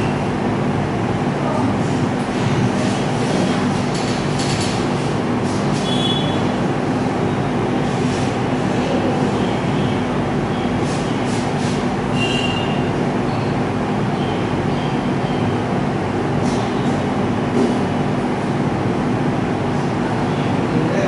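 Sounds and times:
mechanical rumble with low hum: 0.0s - 21.0s
short high squeals: 12.1s - 12.9s.

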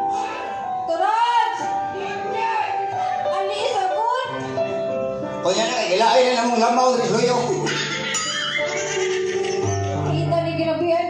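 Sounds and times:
accompanying music: 0.0s - 11.0s.

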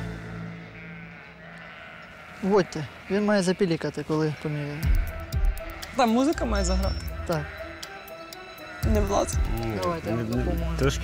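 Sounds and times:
sheep bleating: 0.4s - 11.0s
soft background music: 4.6s - 11.0s.

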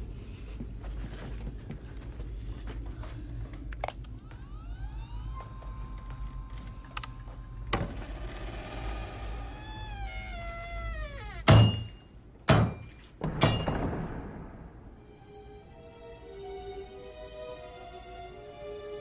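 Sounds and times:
eerie sliding tones: 4.0s - 10.2s.

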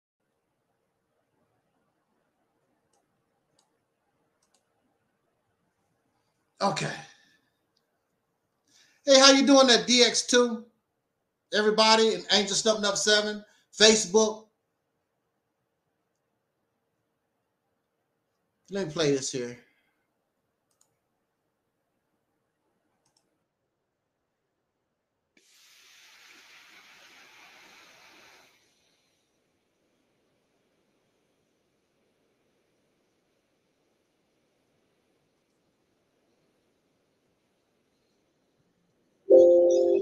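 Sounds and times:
faint mouse clicks: 2.6s - 4.9s, 20.6s - 21.1s, 22.9s - 23.4s, 35.3s - 35.7s.

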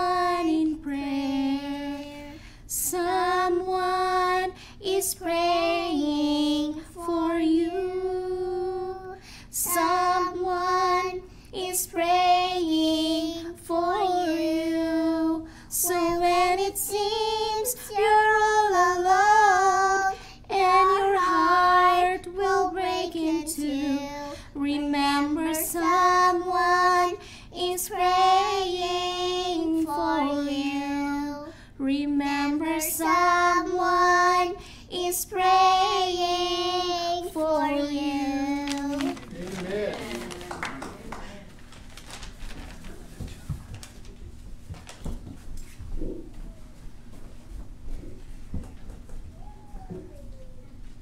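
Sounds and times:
girl and woman singing gospel: 0.0s - 42.4s.

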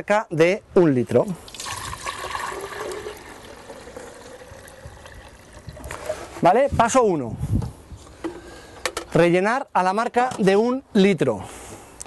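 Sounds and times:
water pouring into plastic container: 1.4s - 6.3s.

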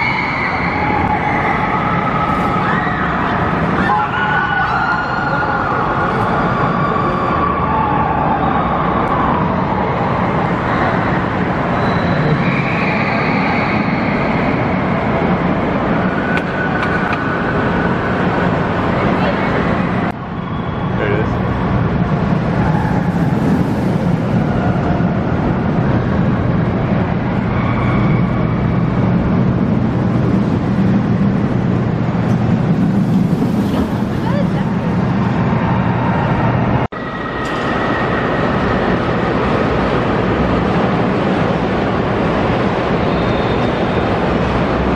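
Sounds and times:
roller coaster train rumbling: 0.0s - 44.9s
crowd chatter: 32.6s - 40.9s.

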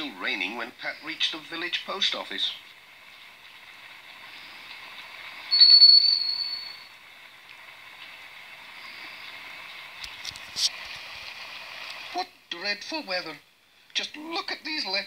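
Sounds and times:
rain hissing: 0.0s - 15.0s.

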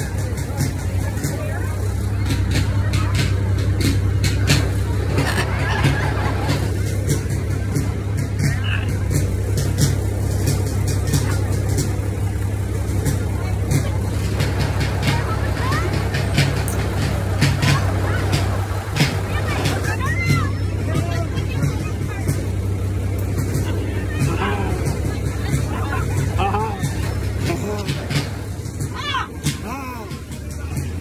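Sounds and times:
vehicle engine humming: 0.0s - 31.0s
voices: 0.0s - 31.0s.

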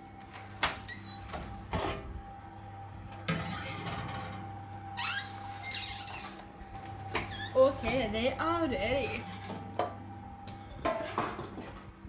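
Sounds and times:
knock and scrape: 10.8s - 11.8s.

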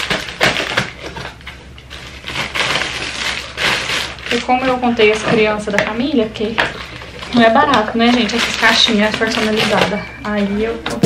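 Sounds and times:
plastic packaging crinkling: 0.0s - 11.0s.

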